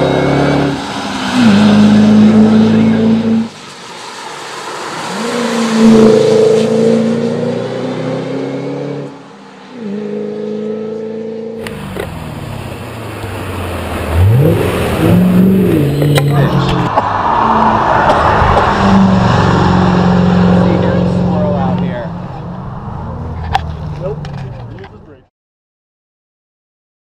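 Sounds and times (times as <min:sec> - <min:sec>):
car passing close by: 0:00.0 - 0:24.5
supercharged car engine revving: 0:00.0 - 0:24.9.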